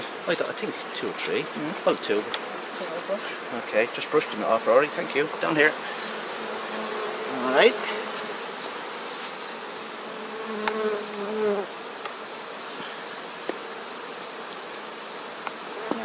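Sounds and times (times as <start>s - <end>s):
bee buzzing close by: 0.0s - 16.0s
bees humming: 0.0s - 16.0s.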